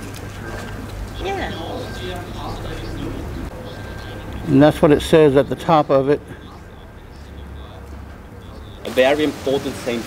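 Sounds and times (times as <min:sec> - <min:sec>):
pigeons cooing: 0:00.0 - 0:09.4
distant voices: 0:00.0 - 0:10.0
street background: 0:00.0 - 0:10.0.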